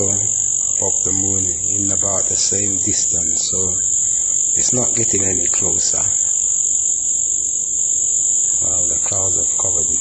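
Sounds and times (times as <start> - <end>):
man speaking low: 0.0 - 4.0, 4.6 - 6.4, 8.6 - 10.0
high-pitched whine: 0.0 - 10.0.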